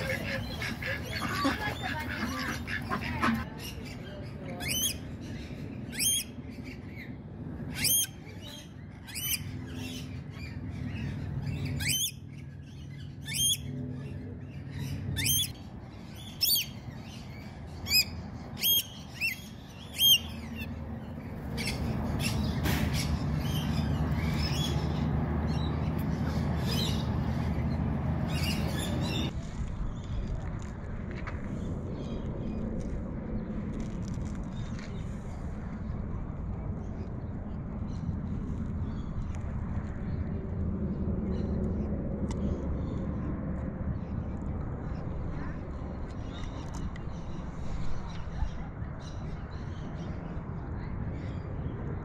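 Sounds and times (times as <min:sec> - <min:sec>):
steady low rumble: 0:00.0 - 0:52.0.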